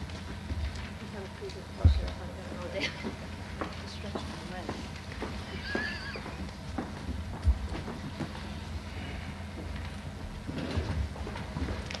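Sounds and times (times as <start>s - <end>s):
steady low hum: 0.0s - 12.0s
audience knocks and shuffles: 3.0s - 8.8s.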